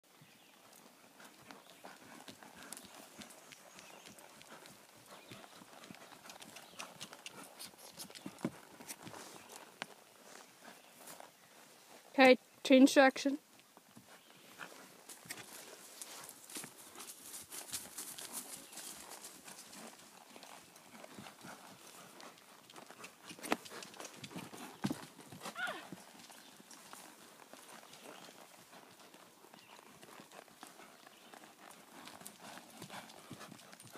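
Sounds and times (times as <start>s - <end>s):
horse hoofbeats trotting: 0.1s - 33.9s.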